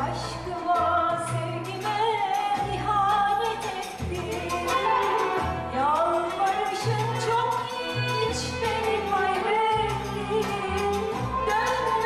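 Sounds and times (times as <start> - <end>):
woman singing: 0.0 - 12.0
traditional ensemble playing: 2.8 - 12.0.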